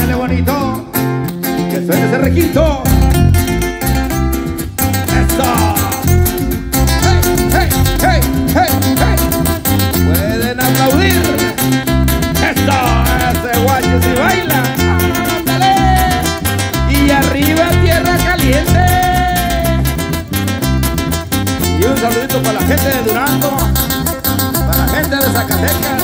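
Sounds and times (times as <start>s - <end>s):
guitars: 0.0s - 26.0s
live band playing dance music: 0.0s - 26.0s
rhythmic bass line: 0.0s - 26.0s.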